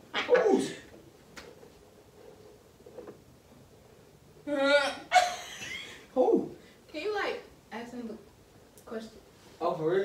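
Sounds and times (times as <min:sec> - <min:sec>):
person crying out: 0:00.2 - 0:00.8, 0:04.5 - 0:05.4
person yelping: 0:00.2 - 0:00.8, 0:04.5 - 0:05.4.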